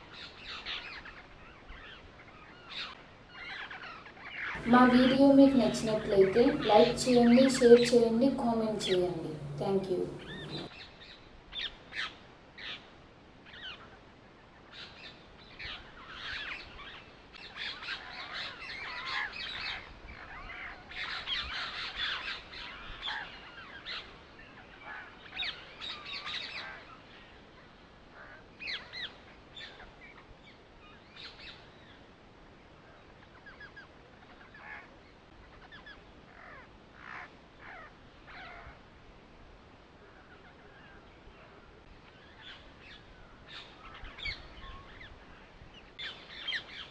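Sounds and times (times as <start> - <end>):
birds chirping: 4.5 - 10.7.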